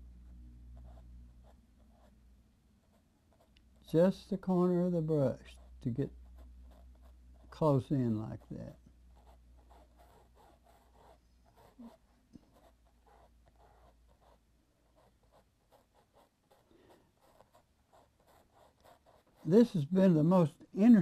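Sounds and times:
faint low hum: 0.0 - 21.0
paintbrush dabbing paint: 2.8 - 20.3.

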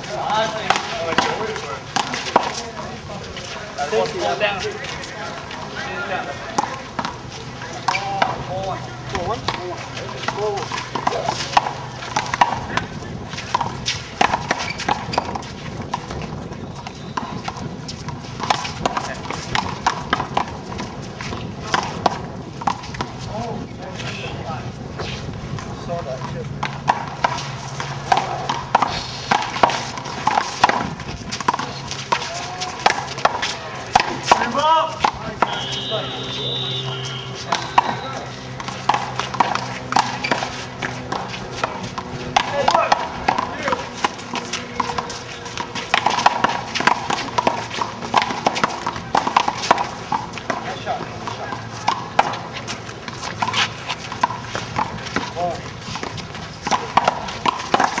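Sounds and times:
players' voices: 0.0 - 58.0.

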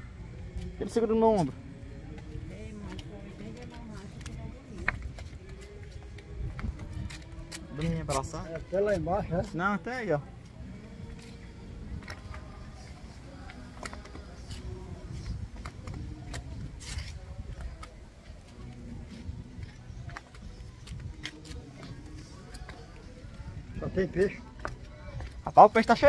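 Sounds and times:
faint distant voices: 0.0 - 26.0
footsteps on concrete steps: 0.4 - 26.0.

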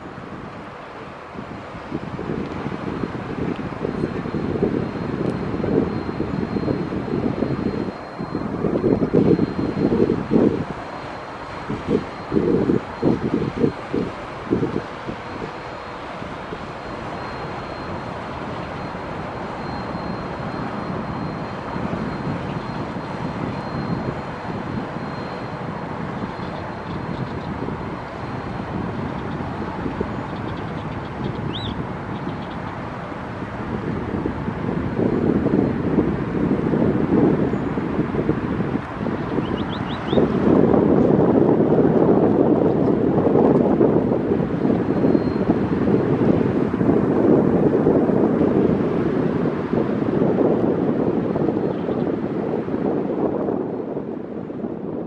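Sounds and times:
wake wash: 0.0 - 52.9
boat engines droning: 0.0 - 55.0
wind buffeting microphone: 0.0 - 55.0.

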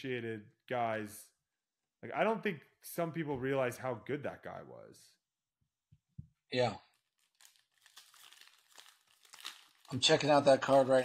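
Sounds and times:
foil wrapper crinkling torn open: 6.9 - 11.0.

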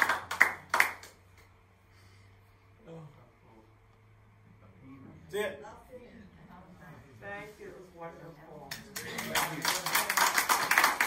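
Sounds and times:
audience clapping: 0.0 - 1.4, 8.7 - 11.0
faint low hum: 0.0 - 11.0.

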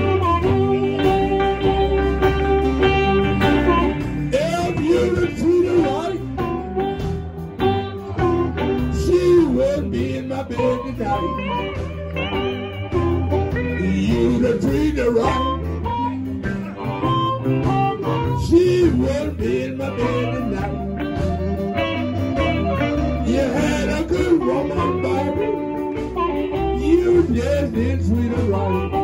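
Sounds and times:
blues band playing: 0.0 - 29.0
harmonica: 0.0 - 29.0.

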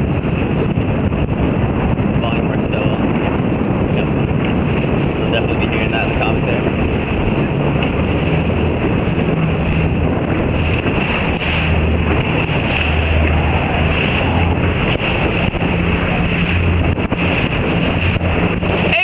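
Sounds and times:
low hum: 0.0 - 19.0
rushing splashing water: 0.0 - 19.0
wind buffeting microphone: 0.0 - 19.0.

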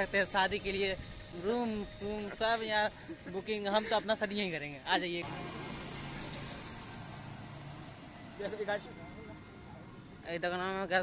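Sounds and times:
hiss of passing vehicles: 0.0 - 1.4, 5.2 - 10.2.

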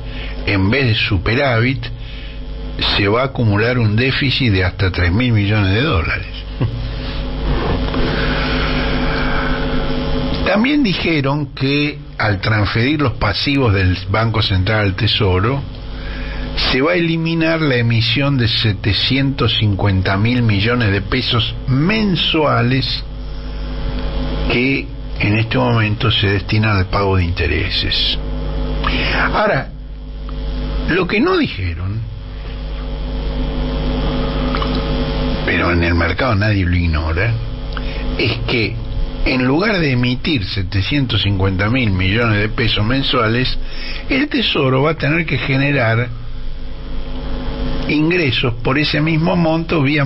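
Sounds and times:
low hum with held tones: 0.0 - 50.0.

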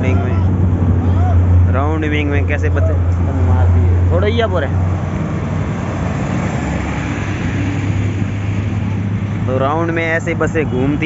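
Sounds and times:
bus engine droning: 0.0 - 11.0
tyre and road noise: 0.0 - 11.0.

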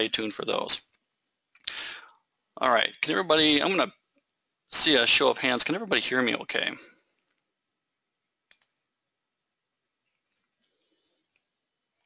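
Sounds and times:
faint clicks: 8.5 - 8.8.

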